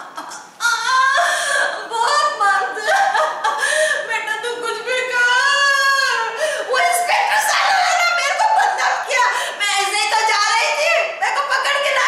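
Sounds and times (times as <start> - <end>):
woman's high raspy wail: 0.6 - 3.6.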